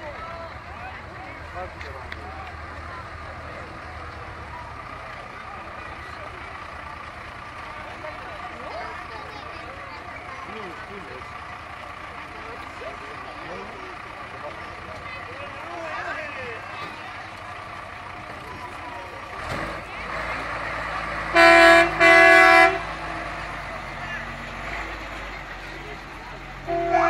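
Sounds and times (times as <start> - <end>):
fire truck diesel engine rumbling: 0.0 - 27.0
onlookers chattering: 0.0 - 27.0.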